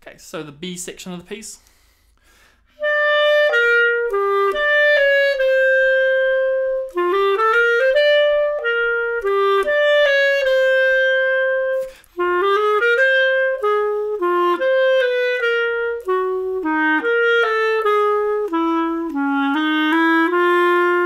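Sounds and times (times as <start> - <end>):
solo clarinet jazz waltz: 2.8 - 21.0.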